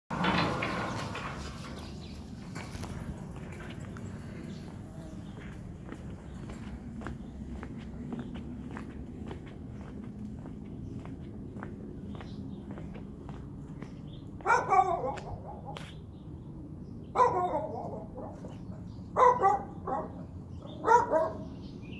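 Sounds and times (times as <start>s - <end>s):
footsteps on brick paving: 2.4s - 16.1s.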